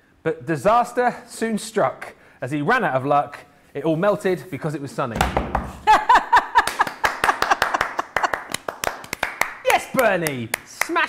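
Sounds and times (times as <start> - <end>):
hands clapping rapidly: 6.6 - 11.0.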